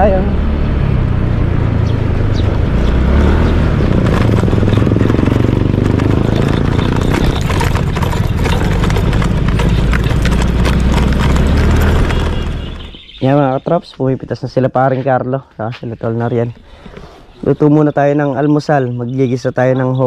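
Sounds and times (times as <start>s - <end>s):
motorcycle engine and wind rumble: 0.0s - 13.6s.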